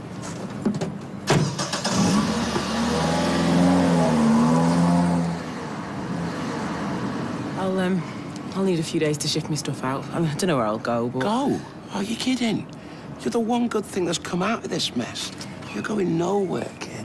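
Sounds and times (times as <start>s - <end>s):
car engine pulling away: 1.4s - 7.5s.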